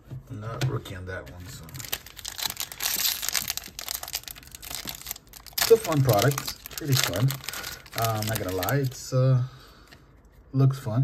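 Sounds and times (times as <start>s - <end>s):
plastic wrapper crinkling: 1.6s - 9.1s.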